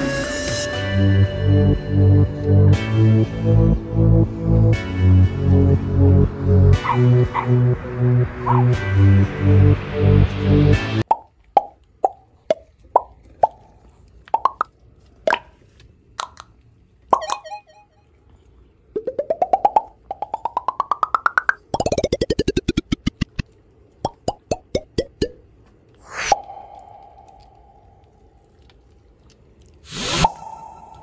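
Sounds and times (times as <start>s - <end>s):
popping plops: 11.0s - 15.5s, 17.1s - 17.6s, 19.0s - 25.5s
blips changing in pitch: 17.2s - 18.1s, 19.0s - 23.2s.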